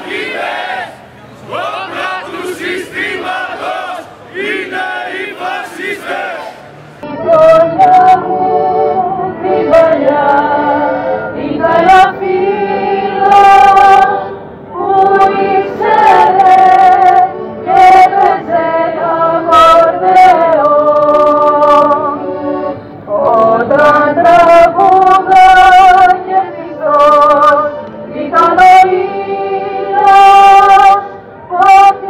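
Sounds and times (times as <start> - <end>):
woman singing through a megaphone: 1.5 - 4.1, 4.7 - 32.0.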